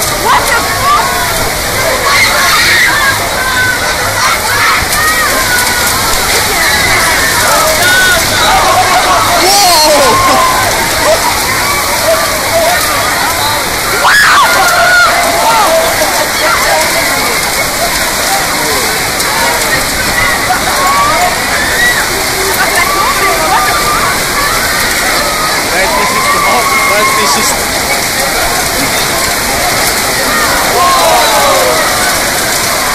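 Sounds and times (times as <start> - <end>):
people shouting: 0.0 - 32.9
torrential rain pouring: 0.0 - 32.9.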